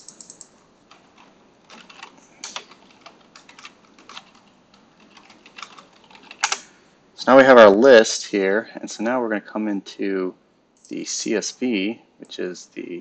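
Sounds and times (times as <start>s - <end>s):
computer keyboard typing: 0.0s - 6.6s.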